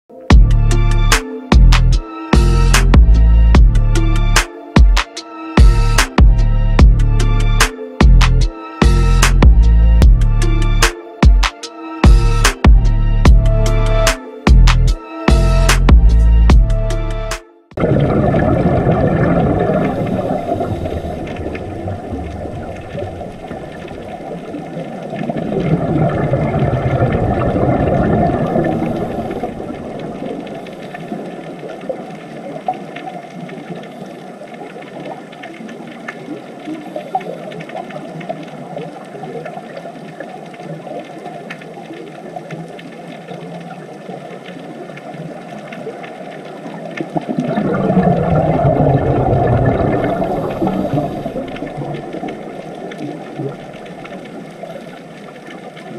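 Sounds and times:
diver exhaling bubbles: 17.8s - 23.2s, 25.4s - 30.0s, 47.2s - 53.7s
muffled underwater rush: 17.8s - 55.9s.

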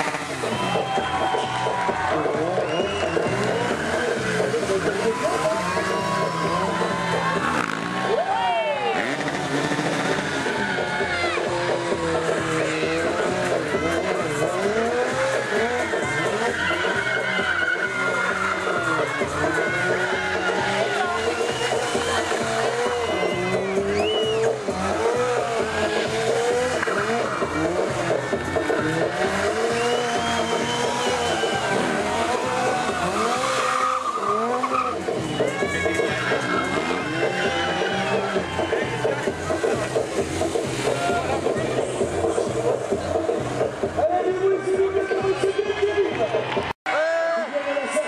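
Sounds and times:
tyre squealing on tarmac: 0.0s - 43.4s
motorcycle engine revving: 0.0s - 44.2s.

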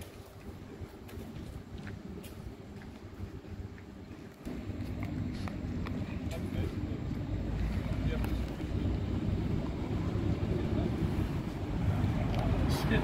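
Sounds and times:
diesel bus engines rumbling: 2.1s - 13.0s.

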